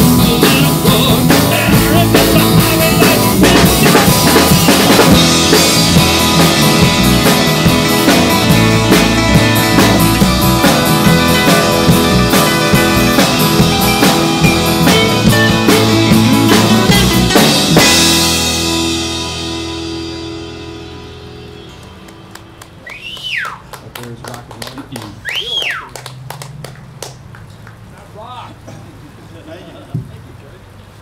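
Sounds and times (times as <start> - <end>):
acoustic guitar band strummed chord: 0.0 - 23.2
people clapping: 21.7 - 28.2
rising-then-falling whistles: 22.8 - 23.6, 25.2 - 26.0.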